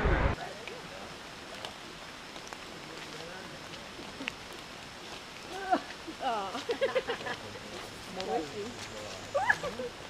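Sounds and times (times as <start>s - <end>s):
faint forest hiss: 0.0s - 10.0s.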